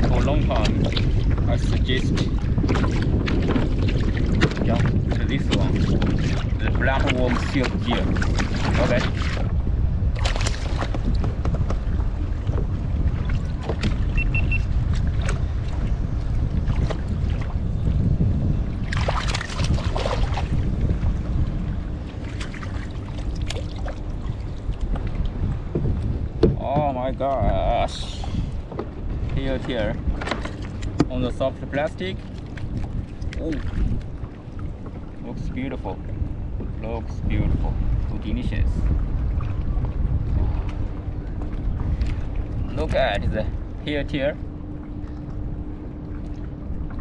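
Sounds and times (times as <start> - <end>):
water lapping at kayak: 0.0 - 47.0
wind rumbling on microphone: 0.0 - 47.0.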